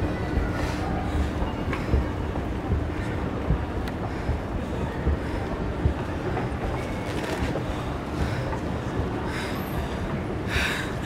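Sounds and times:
soft low thumps: 1.2 - 7.0.

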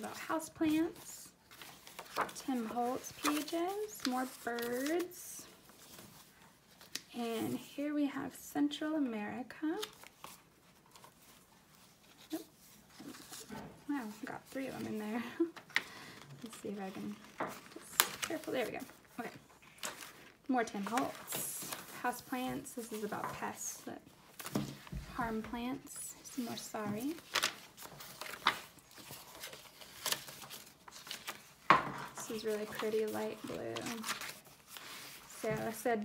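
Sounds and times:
paper pages rustling: 0.0 - 7.1, 9.8 - 36.0.

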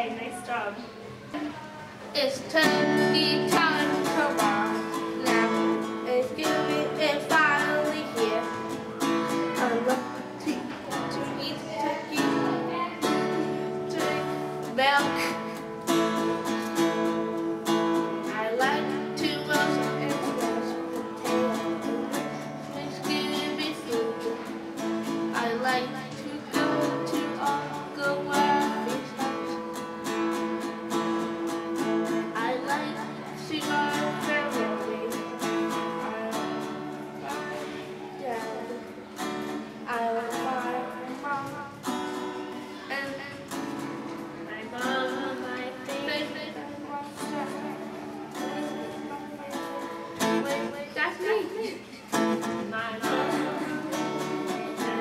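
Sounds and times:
acoustic guitar strumming: 0.0 - 55.0
person singing: 1.6 - 55.0.

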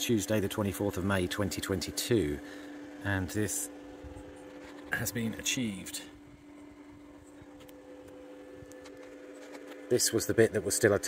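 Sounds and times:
faint two-tone hum: 0.0 - 11.0.

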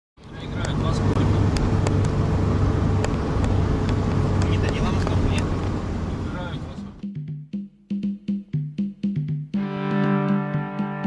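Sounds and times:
vehicle engine running: 0.2 - 7.0.

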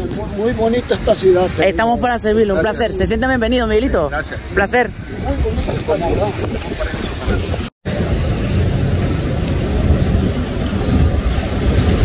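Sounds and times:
outdoor street noise: 0.0 - 12.0.

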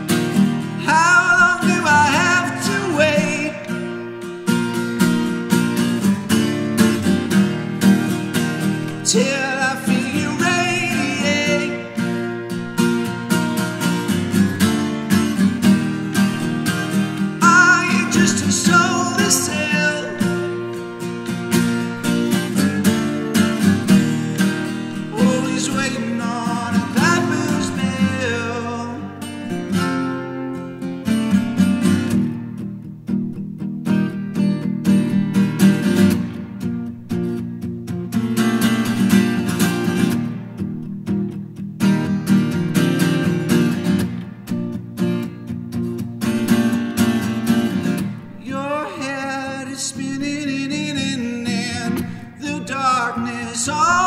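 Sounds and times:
acoustic guitar strumming: 0.0 - 54.0
bending guitar melody: 0.0 - 54.0.

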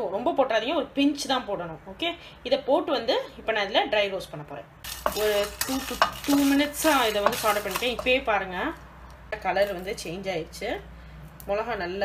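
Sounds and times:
seeds rattling in pan: 4.8 - 8.2
spatula scraping frying pan: 4.8 - 8.2.

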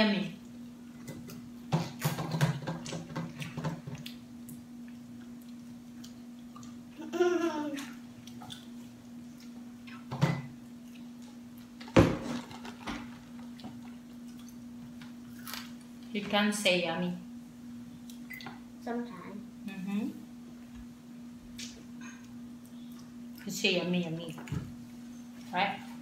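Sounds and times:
steady low hum: 0.0 - 26.0
chewing fried chicken: 2.8 - 6.9.

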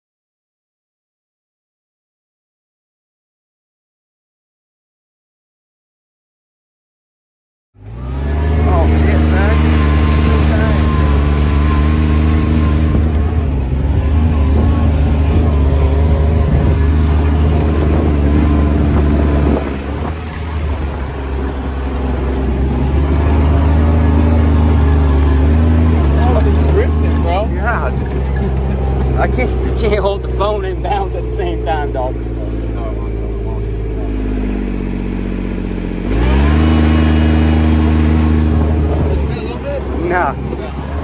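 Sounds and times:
diesel engine running hard: 7.8 - 41.0
vehicle driving through mud and water: 7.8 - 41.0.

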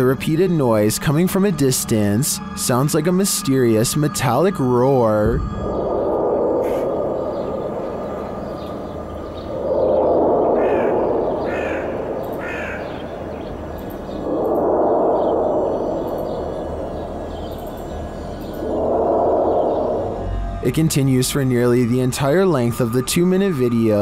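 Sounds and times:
distant metallic roar: 5.2 - 21.7
crows cawing: 10.6 - 13.8.

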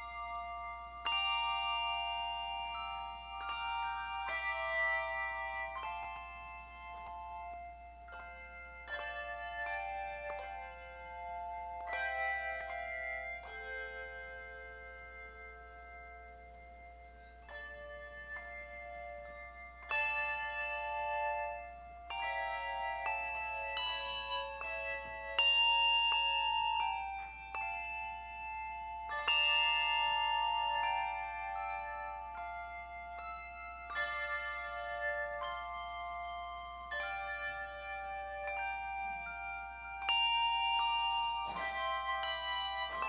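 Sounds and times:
handbell choir playing chords: 0.0 - 43.0.

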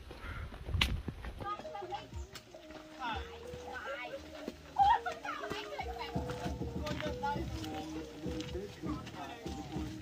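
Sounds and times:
background music with held notes: 1.4 - 10.0
people chattering and calling out: 1.4 - 10.0.

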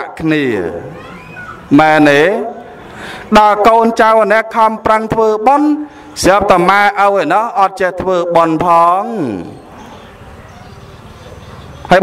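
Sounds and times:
man speaking: 0.0 - 0.9, 1.7 - 9.6.

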